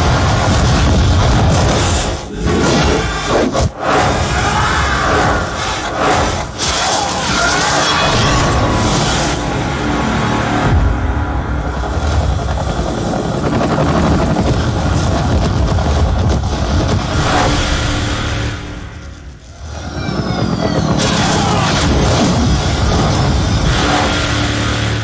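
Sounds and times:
dramatic music: 0.0 - 25.0
heavy engine sound effects: 7.6 - 13.7.

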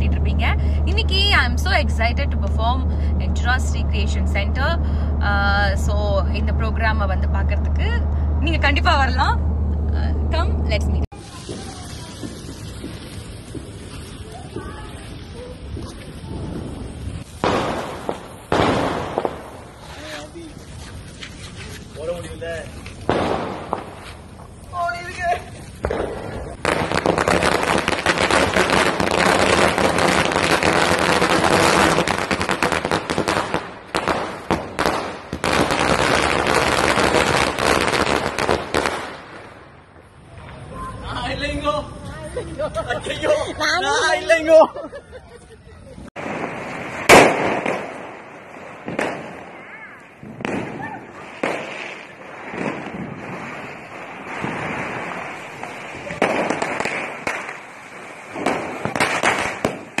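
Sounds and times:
firecrackers exploding: 11.0 - 42.4, 46.0 - 60.0.

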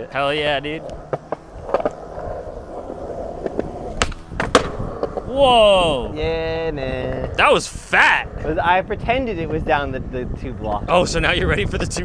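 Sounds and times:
skateboard wheels rolling on concrete: 0.0 - 12.0
skateboard cracks: 0.8 - 5.3.

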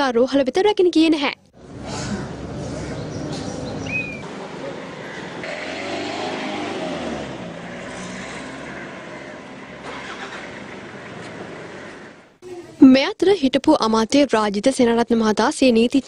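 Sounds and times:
street traffic: 1.3 - 12.8
road noise: 1.5 - 12.4
van engine running: 3.4 - 12.3.

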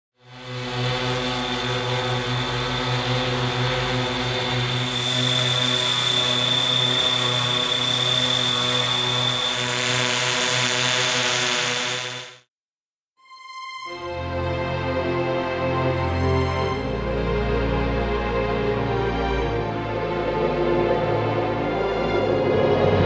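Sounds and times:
drone propeller buzz: 0.2 - 12.5.

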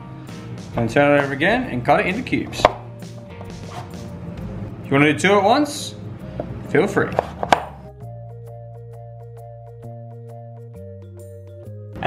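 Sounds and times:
background music: 0.0 - 12.0
knife chopping on wooden board: 2.6 - 4.0, 6.4 - 7.8.

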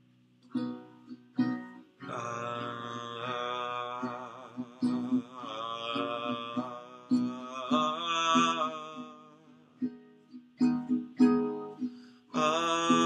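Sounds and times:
acoustic guitar strums: 0.4 - 2.2, 9.8 - 13.0
man singing with vibrato: 2.0 - 10.0, 11.8 - 13.0.

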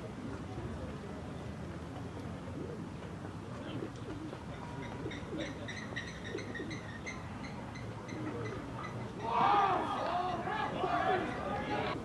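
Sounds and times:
birds chirping: 4.6 - 10.4.

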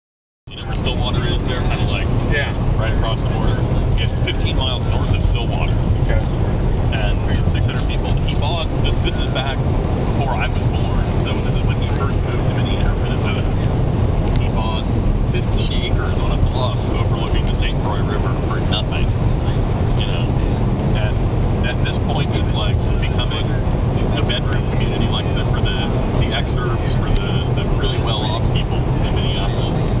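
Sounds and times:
car cabin road noise: 0.5 - 30.0.

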